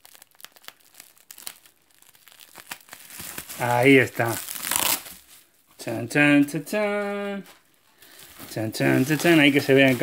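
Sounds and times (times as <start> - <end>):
bubble wrap crackling: 0.0 - 10.0.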